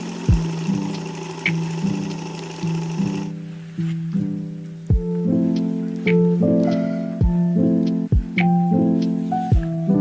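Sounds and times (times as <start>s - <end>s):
electric sewing machine running: 0.0s - 3.3s
background music with plucked notes: 0.0s - 10.0s.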